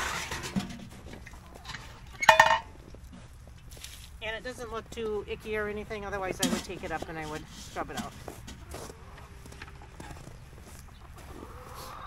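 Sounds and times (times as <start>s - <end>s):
metal scraping: 0.0s - 2.7s
ringing metal clank: 2.2s - 2.7s.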